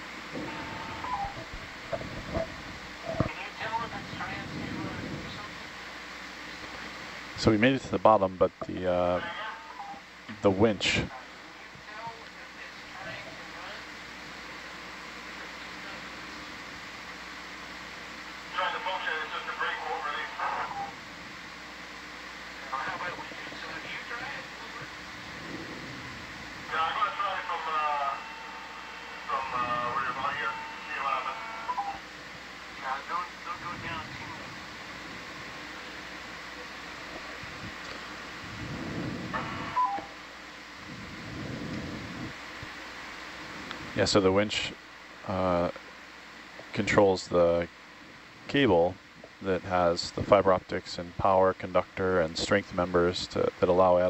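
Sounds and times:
background hiss and hum: 0:00.0 - 0:54.0
muffled radio voice chatter: 0:08.2 - 0:09.8, 0:10.4 - 0:13.8, 0:18.5 - 0:21.0, 0:22.6 - 0:25.0, 0:26.7 - 0:32.0, 0:32.8 - 0:34.6.

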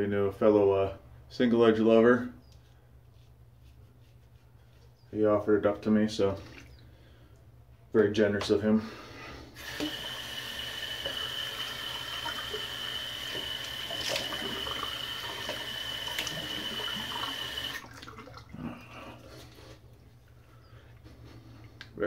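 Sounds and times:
tap water running into sink: 0:09.6 - 0:18.5
water splashes: 0:12.1 - 0:19.3.

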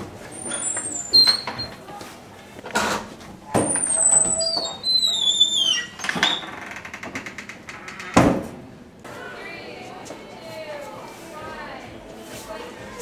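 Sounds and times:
door hinges squealing: 0:00.3 - 0:01.8, 0:02.8 - 0:08.6
door banging: 0:02.8 - 0:08.8
door thud: 0:07.0 - 0:08.7.

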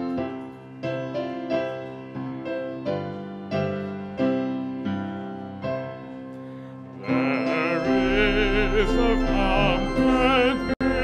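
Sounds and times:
piano chords: 0:00.0 - 0:11.0.

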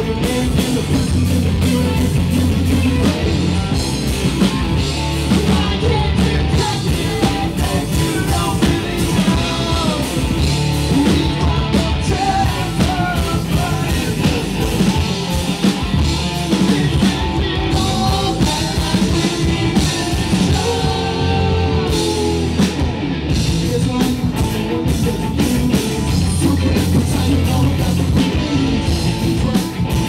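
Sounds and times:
live rock band playing: 0:00.0 - 0:30.0.

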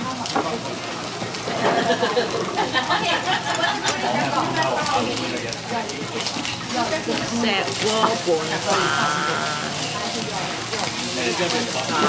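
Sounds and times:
hot stone bowl sizzling: 0:00.0 - 0:12.0
restaurant chatter: 0:00.0 - 0:12.0.

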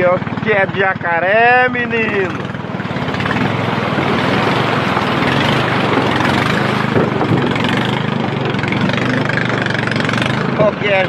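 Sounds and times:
outboard motor running: 0:00.0 - 0:11.0
water churning and splashing: 0:00.0 - 0:11.0.

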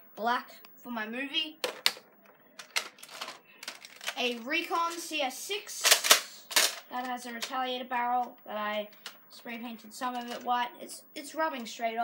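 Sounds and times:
plastic toy blaster clicks and knocks: 0:05.8 - 0:07.6.

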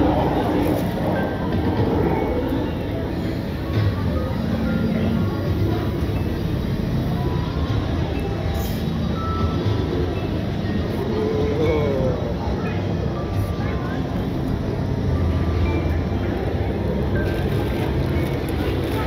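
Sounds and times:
indistinct voices: 0:00.0 - 0:19.0
music: 0:00.0 - 0:19.0.

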